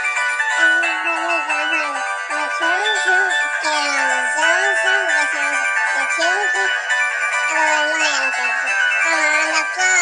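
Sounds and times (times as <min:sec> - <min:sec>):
synth-pop backing track: 0:00.0 - 0:10.0
person singing: 0:00.5 - 0:06.8, 0:07.5 - 0:10.0.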